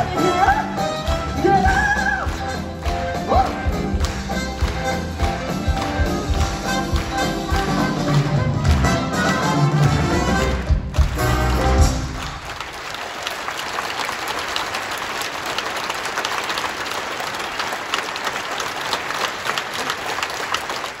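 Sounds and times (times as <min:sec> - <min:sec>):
audience applauding: 0:00.0 - 0:21.0.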